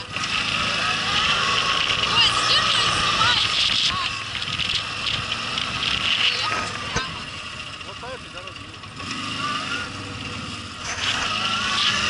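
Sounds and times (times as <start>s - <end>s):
people's voices: 0.0s - 12.0s
quad bike engine running: 0.0s - 12.0s.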